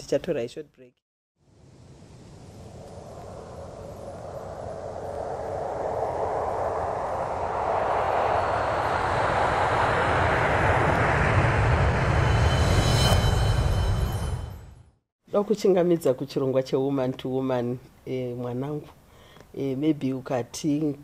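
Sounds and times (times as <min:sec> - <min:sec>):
steady rushing noise: 0:01.5 - 0:14.6
low rumble: 0:01.5 - 0:15.0.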